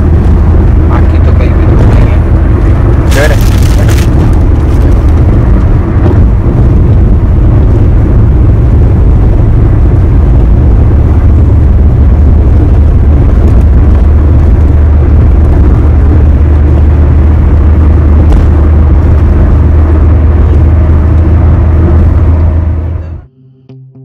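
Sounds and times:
car road and wind noise: 0.0s - 23.3s.

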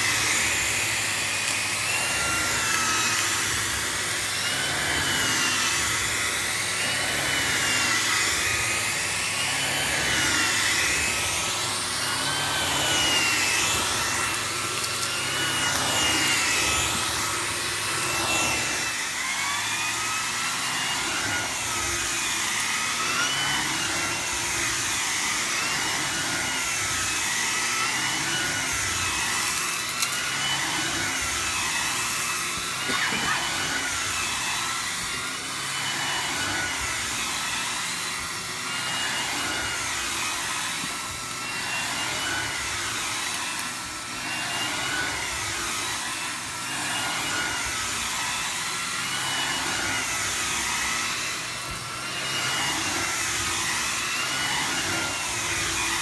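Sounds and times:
vacuum cleaner on carpet: 0.0s - 56.0s.

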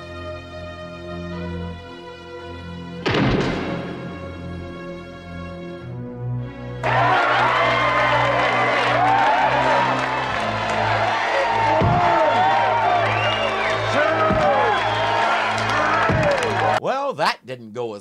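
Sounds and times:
music score: 0.0s - 16.8s
crowd cheering and whooping: 6.8s - 16.8s
many voices shouting: 6.8s - 16.8s.

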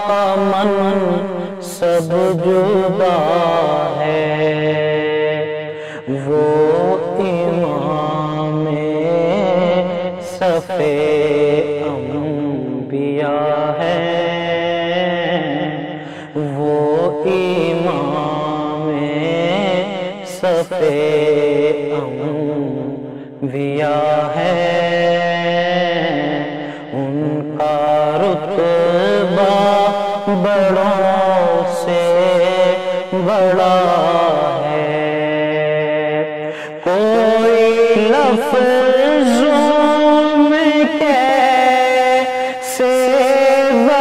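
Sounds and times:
man singing long held notes: 0.0s - 44.0s
breath: 5.7s - 6.2s, 15.9s - 16.4s, 23.0s - 23.4s, 26.6s - 27.0s, 36.4s - 36.8s, 42.3s - 42.6s.

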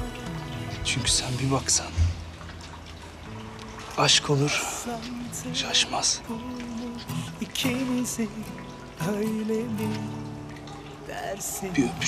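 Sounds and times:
person singing love song: 0.0s - 1.4s, 4.5s - 12.0s
soft instrumental accompaniment: 0.0s - 12.0s.

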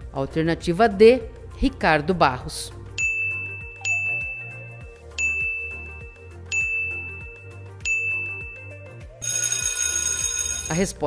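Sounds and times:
background music: 0.0s - 11.0s
bell-like alarm ringing: 3.0s - 10.8s
timer chimes high tone: 3.0s - 10.8s.

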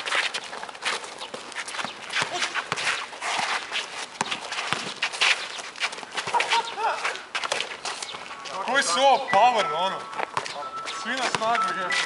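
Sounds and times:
footsteps and shoe scuffs on concrete: 0.0s - 12.0s.

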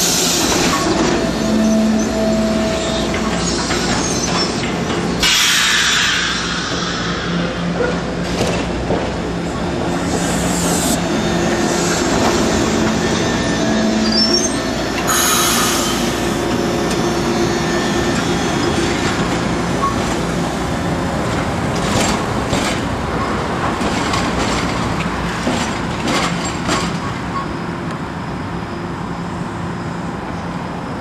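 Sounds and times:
trolley wheels squealing: 0.1s - 5.5s, 11.1s - 20.1s.

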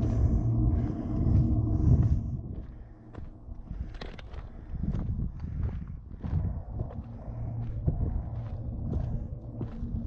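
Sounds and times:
low steady rumble: 0.0s - 10.0s
footsteps on rocky dirt trail: 0.5s - 10.0s.

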